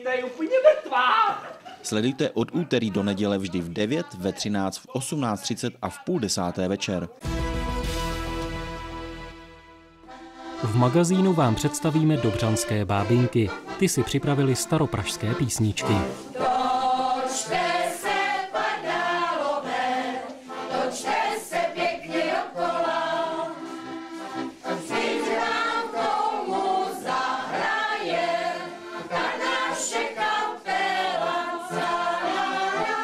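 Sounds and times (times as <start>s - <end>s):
women singing together: 16.2s - 24.0s, 24.6s - 33.0s.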